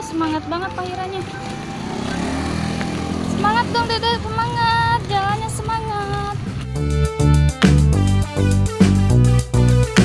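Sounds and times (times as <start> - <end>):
vehicle engine approaching: 0.0 - 7.9.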